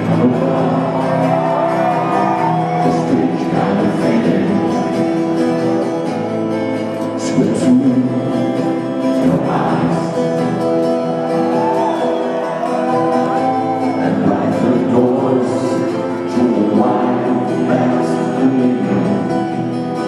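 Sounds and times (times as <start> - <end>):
person singing: 0.0 - 20.0
strummed acoustic guitar: 0.0 - 20.0.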